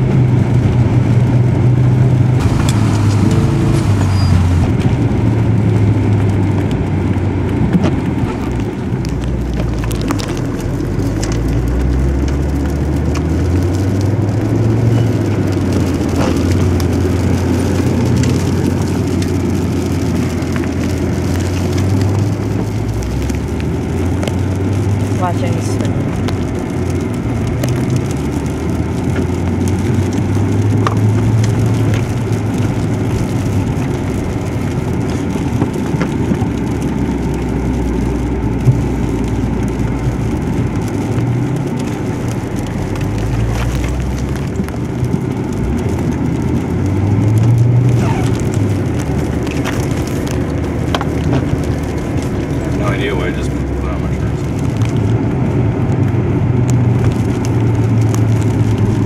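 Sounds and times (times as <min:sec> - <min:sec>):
car engine rumble from cabin: 0:00.0 - 0:59.0.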